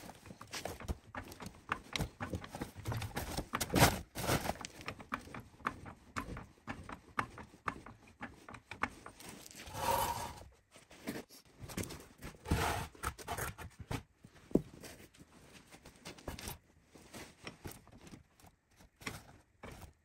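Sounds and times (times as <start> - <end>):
floor jack scraping and rustling: 9.6 - 10.5, 12.4 - 13.0.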